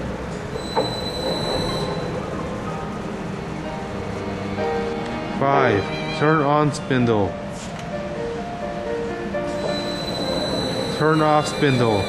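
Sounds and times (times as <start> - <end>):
background music: 0.0 - 12.0
lathe spindle whining: 0.4 - 6.7, 9.4 - 12.0.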